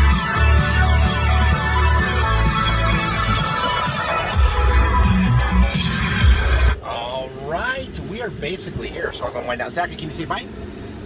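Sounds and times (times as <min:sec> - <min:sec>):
music with heavy bass beat: 0:00.0 - 0:06.8.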